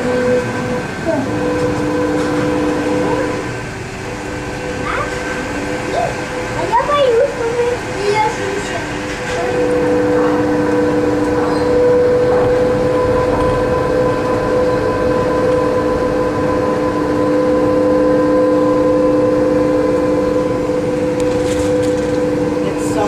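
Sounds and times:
monorail car running noise: 0:00.0 - 0:23.0
two-note electric hum: 0:00.0 - 0:23.0.

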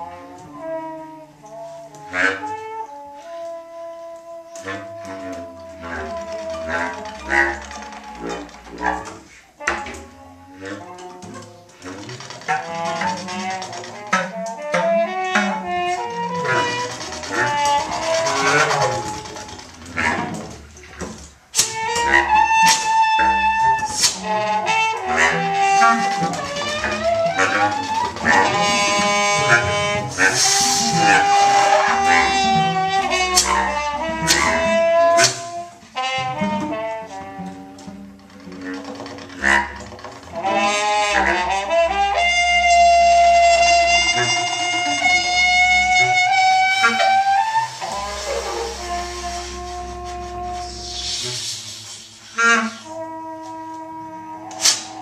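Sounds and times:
acoustic quartet playing: 0:00.0 - 0:55.0.

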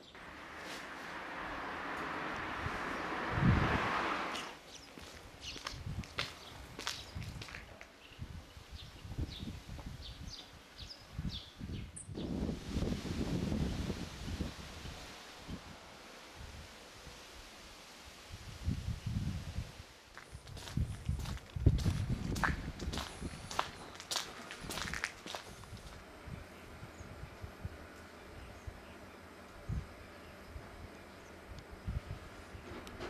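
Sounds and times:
footsteps on paved street: 0:04.3 - 0:08.0, 0:20.1 - 0:26.1.

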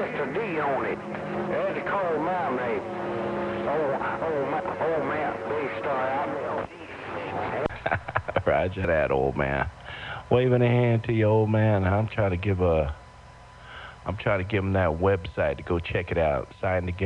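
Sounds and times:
voice over radio receiver: 0:00.0 - 0:02.8, 0:03.6 - 0:07.7
radio crackle: 0:00.0 - 0:17.0.

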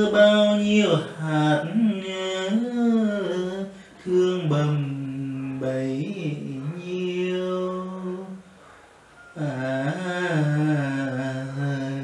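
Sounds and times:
man singing a lullaby: 0:00.0 - 0:08.6, 0:09.2 - 0:12.0.

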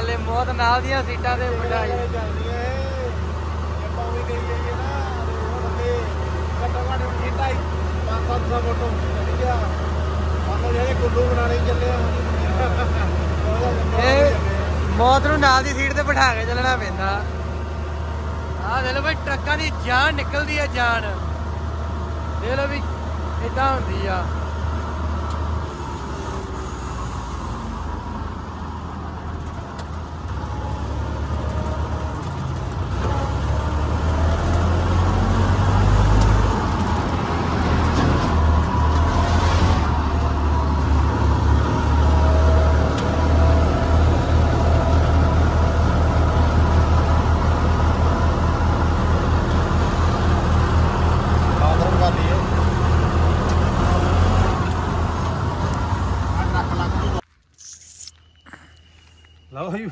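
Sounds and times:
diesel engine rumbling: 0:00.0 - 0:59.9.

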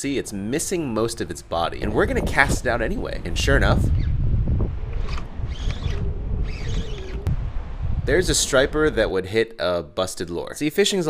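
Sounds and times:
wind buffeting microphone: 0:00.2 - 0:09.4.

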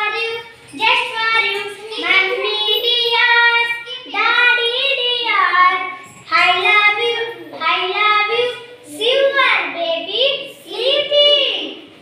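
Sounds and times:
child singing: 0:00.0 - 0:11.8.

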